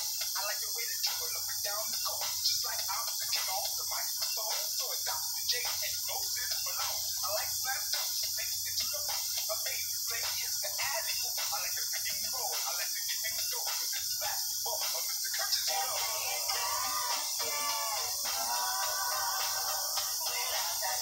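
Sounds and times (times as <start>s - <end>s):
rapping over a beat: 0.0s - 21.0s
steady hiss: 0.0s - 21.0s.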